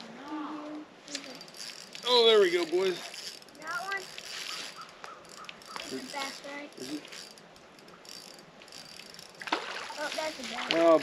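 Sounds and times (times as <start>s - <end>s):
fishing reel cranking: 1.1s - 11.0s.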